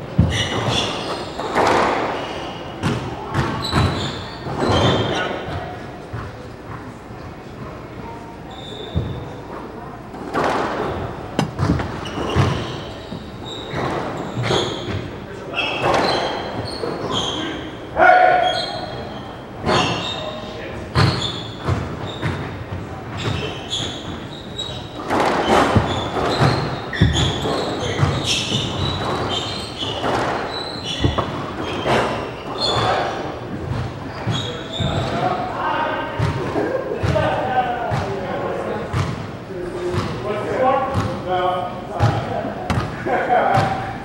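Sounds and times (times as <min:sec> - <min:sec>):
sneakers squeaking on floor: 0:00.0 - 0:38.2, 0:38.8 - 0:41.3, 0:41.9 - 0:44.0
squash ball struck by rackets: 0:10.3 - 0:12.6, 0:25.0 - 0:30.4.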